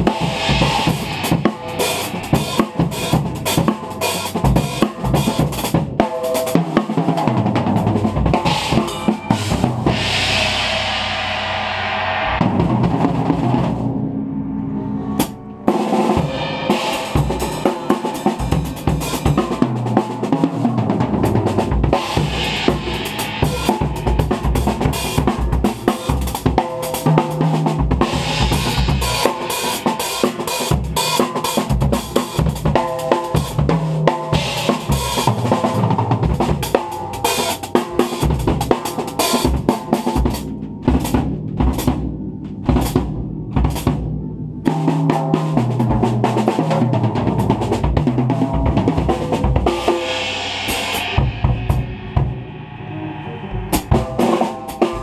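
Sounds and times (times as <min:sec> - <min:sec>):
cymbals: 0:00.0 - 0:55.0
bass drum: 0:50.7 - 0:52.5.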